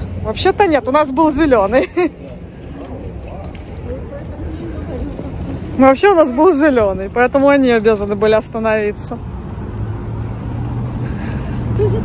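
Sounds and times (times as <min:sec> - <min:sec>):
passing cars humming: 0:00.0 - 0:12.0.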